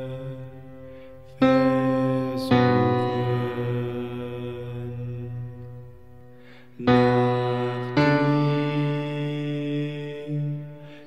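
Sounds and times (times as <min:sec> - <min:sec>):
low piano chord ringing: 0:00.0 - 0:11.0.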